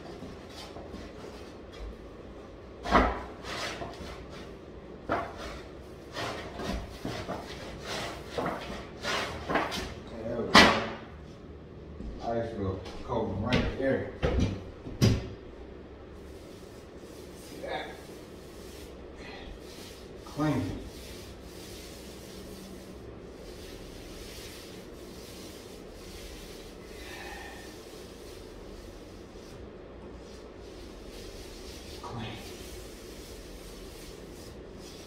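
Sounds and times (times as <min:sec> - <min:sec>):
paint roller swishing: 0:16.2 - 0:35.0.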